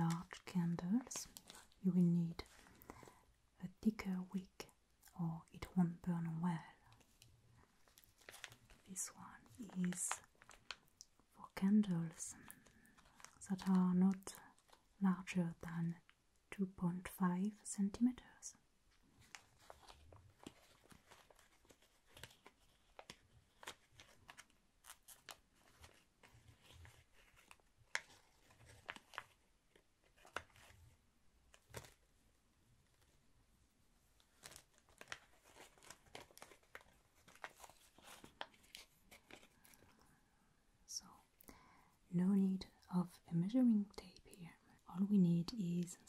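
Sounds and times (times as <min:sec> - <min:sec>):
plastic bag crinkling: 0:00.0 - 0:01.8, 0:07.8 - 0:11.2, 0:12.4 - 0:13.7, 0:34.2 - 0:40.0
soft rustles: 0:00.0 - 0:03.3, 0:06.8 - 0:11.2, 0:18.9 - 0:40.2.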